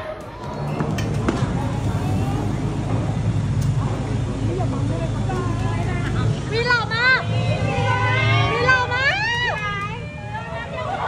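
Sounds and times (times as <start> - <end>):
crowd chatter: 0.0 - 11.0
van engine idling: 0.3 - 11.0.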